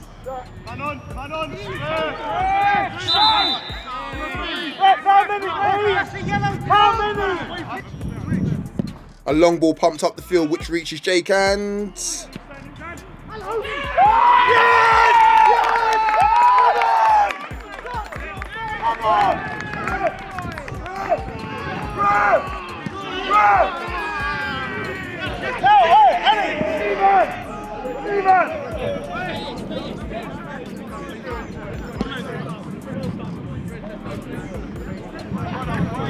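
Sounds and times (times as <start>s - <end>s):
people shouting and cheering: 0.0s - 8.5s, 10.1s - 36.0s.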